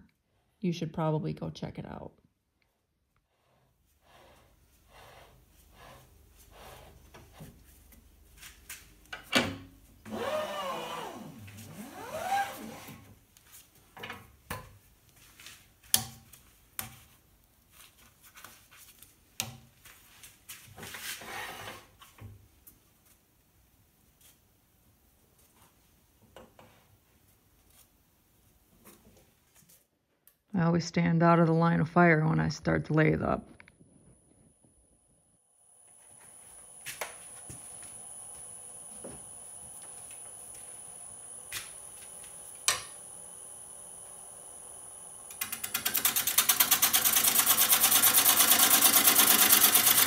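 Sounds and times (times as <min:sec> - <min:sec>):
squeaking rubbing scrape: 0:04.0 - 0:07.5.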